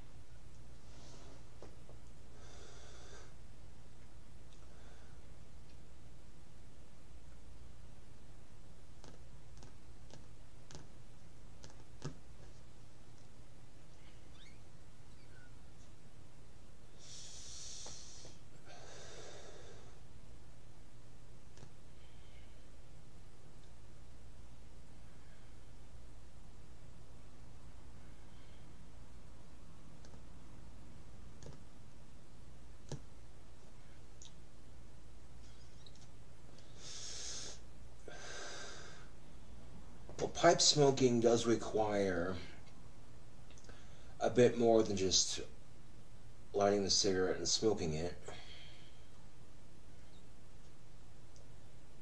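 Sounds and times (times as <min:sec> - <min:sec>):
steady low hum: 0:00.0 - 0:52.0
person inhaling cigarette smoke: 0:16.9 - 0:20.0, 0:36.6 - 0:39.1.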